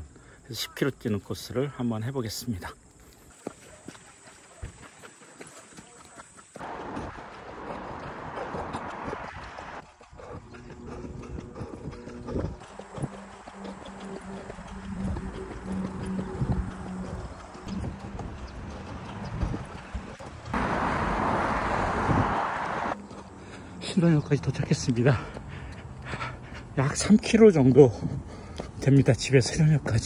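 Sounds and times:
running footsteps on pavement: 2.3 - 30.0
loud rushing noise: 6.6 - 9.8, 20.6 - 23.0.

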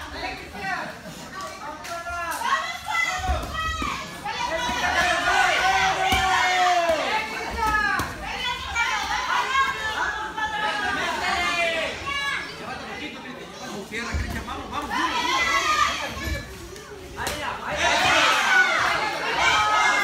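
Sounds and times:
spectators shouting: 2.4 - 12.4, 17.6 - 20.0.

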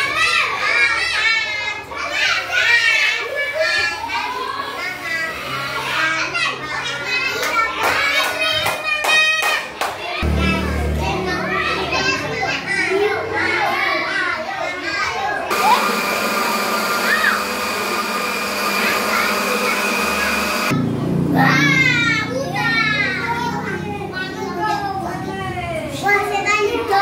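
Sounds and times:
children chattering: 0.0 - 27.0
electric blender running: 15.5 - 20.8.

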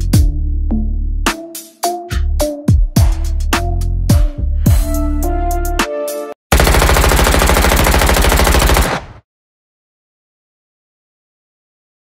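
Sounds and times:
hip-hop beat: 0.0 - 6.3
rapid automatic gunfire: 6.5 - 9.2.

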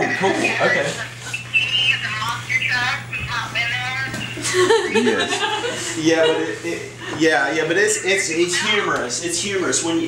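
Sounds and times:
person laughing: 4.4 - 7.1.

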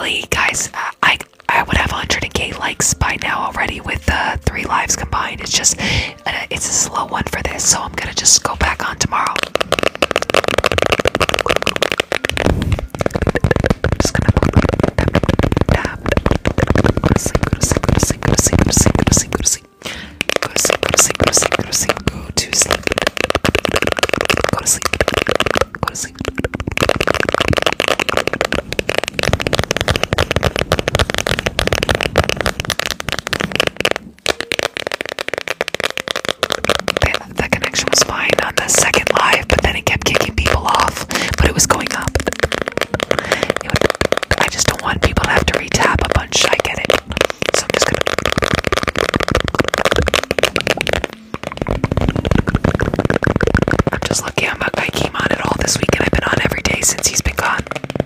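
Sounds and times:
person whispering: 0.0 - 9.5, 12.3 - 23.0, 24.2 - 27.0, 36.9 - 48.2, 53.9 - 57.8
rapid tapping and crackling: 0.0 - 58.0.

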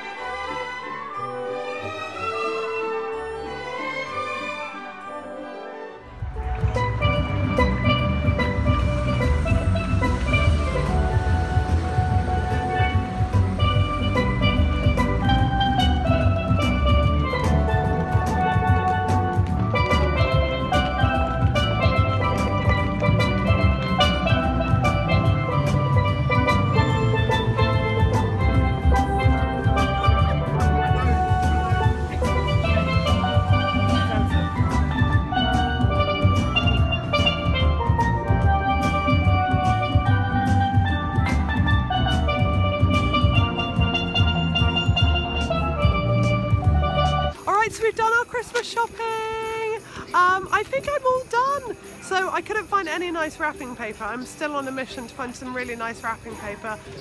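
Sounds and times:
steelpan melody: 0.0 - 57.0
bass and drum backing track: 6.1 - 57.0.

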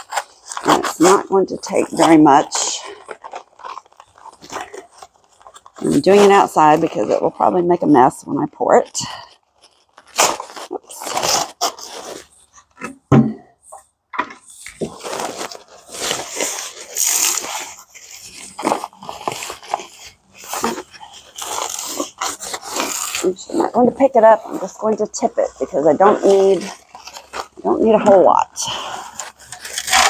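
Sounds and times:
paper sack crinkling and rustling: 0.0 - 30.0
thump: 13.1 - 13.4.

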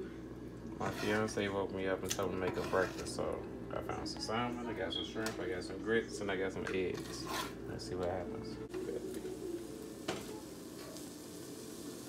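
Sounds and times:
fish sizzling in oil: 8.8 - 12.0.

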